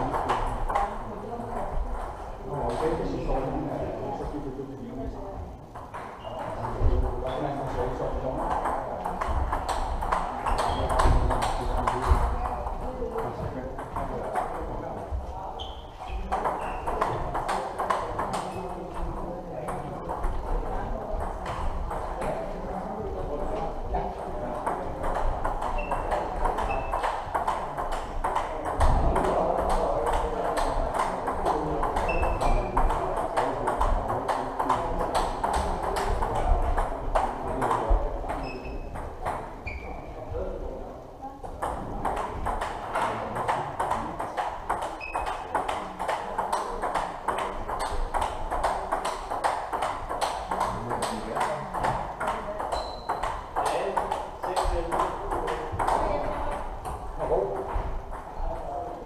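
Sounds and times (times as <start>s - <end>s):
table tennis balls clicking: 0.0s - 3.0s, 5.7s - 7.1s, 8.0s - 14.8s, 15.6s - 22.6s, 23.4s - 39.8s, 41.4s - 58.8s.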